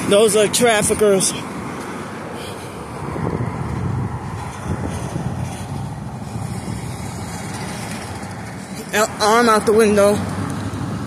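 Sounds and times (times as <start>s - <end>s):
traffic rumble of engines and tyres: 0.0s - 11.0s.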